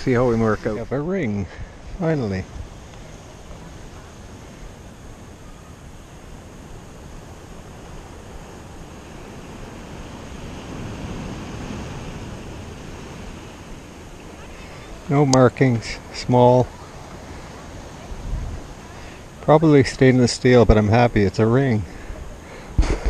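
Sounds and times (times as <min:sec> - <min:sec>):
wind on microphone: 0:00.0 - 0:19.4, 0:20.6 - 0:23.0
surf washing on beach: 0:00.0 - 0:23.0.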